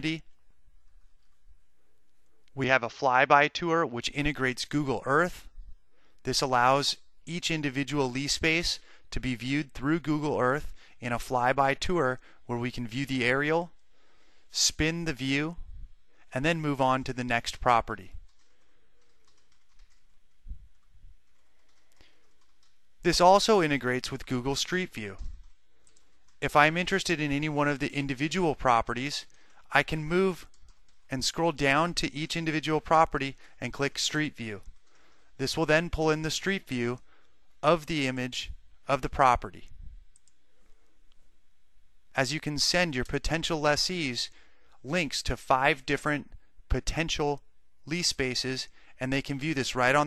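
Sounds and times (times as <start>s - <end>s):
room hiss: 0.0s - 50.0s
keyboard and mouse clicking: 18.3s - 22.8s, 25.1s - 26.3s.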